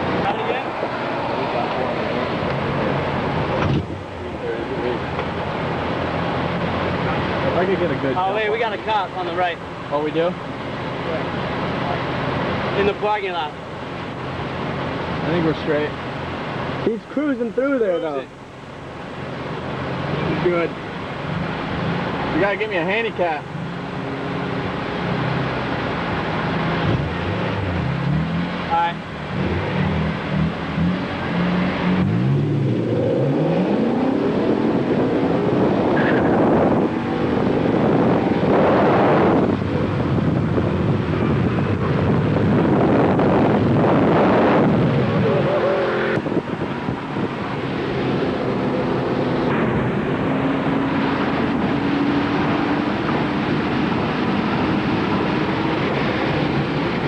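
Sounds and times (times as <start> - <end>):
car engines revving: 0.0 - 57.0
car accelerating through gears: 23.2 - 57.0.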